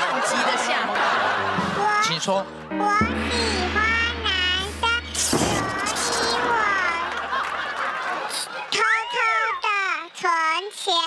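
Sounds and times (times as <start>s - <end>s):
steady low drone: 2.6s - 8.3s
young child speaking: 2.8s - 7.1s, 8.7s - 11.0s.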